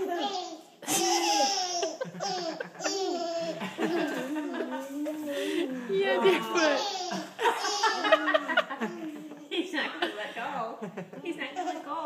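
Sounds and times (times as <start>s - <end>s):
baby giggling: 0.0s - 4.8s, 6.6s - 9.5s.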